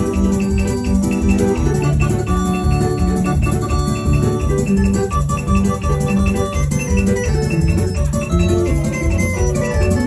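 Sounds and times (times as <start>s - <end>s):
electronic organ chords: 0.0s - 10.0s
pulsing bass beat: 0.0s - 10.0s.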